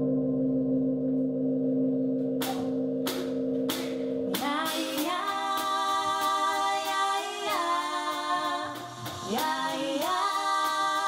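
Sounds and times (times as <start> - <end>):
band droning low chord: 0.0 - 9.7
hissing percussion strokes: 2.4 - 11.0
woman singing: 4.3 - 11.0.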